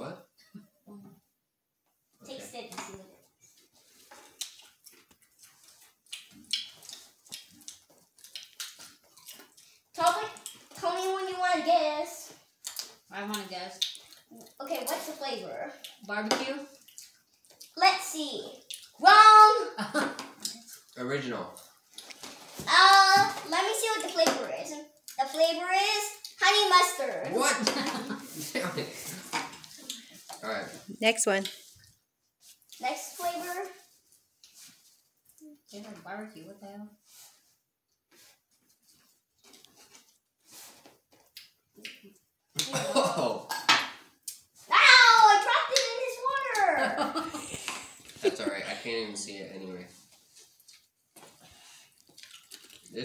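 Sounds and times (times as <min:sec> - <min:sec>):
people chewing crisps: 0:03.4 - 0:10.8, 0:12.4 - 0:16.1, 0:16.7 - 0:19.0, 0:20.3 - 0:22.6, 0:28.2 - 0:30.4, 0:31.4 - 0:35.7, 0:37.1 - 0:42.9, 0:49.9 - 0:53.0
person speaking: 0:30.9 - 0:31.5
people laughing: 0:48.2 - 0:48.8.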